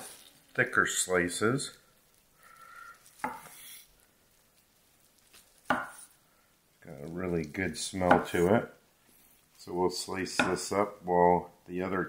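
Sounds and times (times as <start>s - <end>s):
knife slicing onto wooden board: 3.2s - 3.8s.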